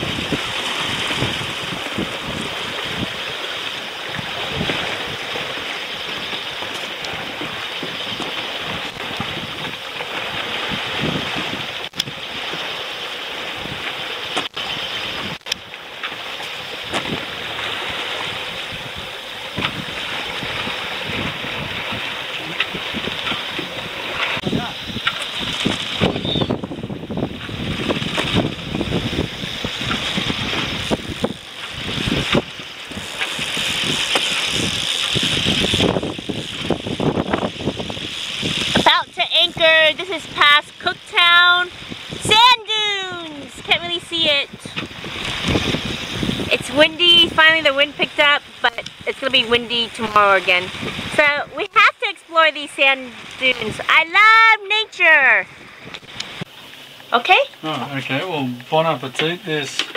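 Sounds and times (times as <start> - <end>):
wind buffeting microphone: 0.0 - 12.8, 13.4 - 56.6
water rushing past hull: 0.0 - 59.9
person speaking: 46.5 - 55.4.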